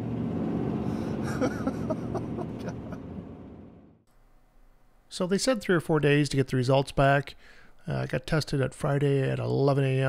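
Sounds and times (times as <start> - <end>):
car engine and road rumble: 0.0 - 4.0
man laughing: 1.2 - 3.1.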